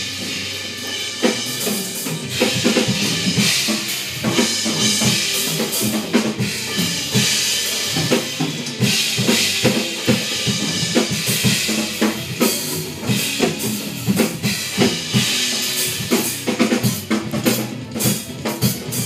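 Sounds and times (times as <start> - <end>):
acoustic drum kit groove: 0.0 - 19.0.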